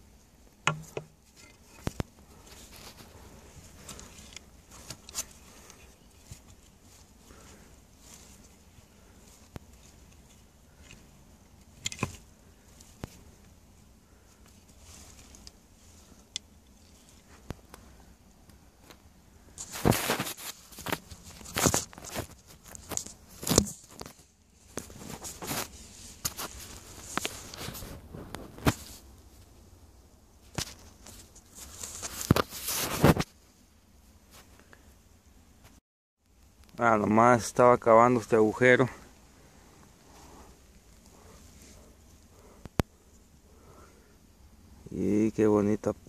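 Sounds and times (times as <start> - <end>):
digging tool scraping in soil: 0.8 - 13.3, 19.5 - 29.1, 30.5 - 33.3.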